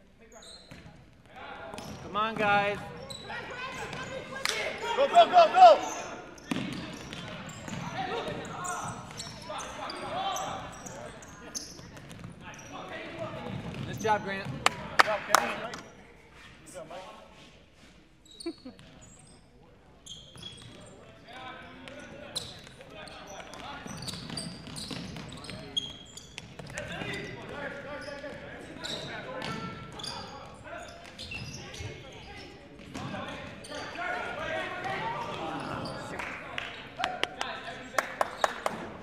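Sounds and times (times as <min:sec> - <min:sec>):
people shouting in a hall: 0:03.4 - 0:06.2.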